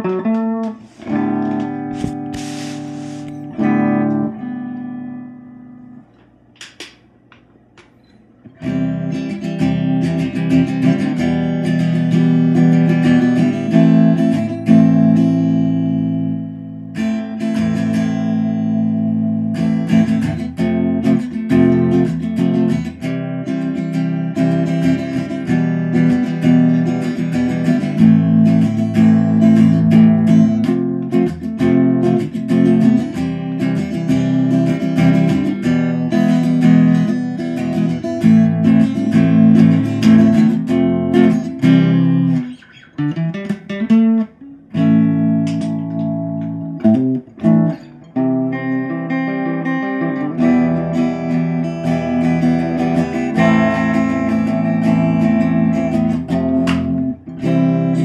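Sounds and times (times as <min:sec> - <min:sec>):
clean electric guitar chords: 0:00.0 - 0:07.3, 0:08.4 - 0:58.0.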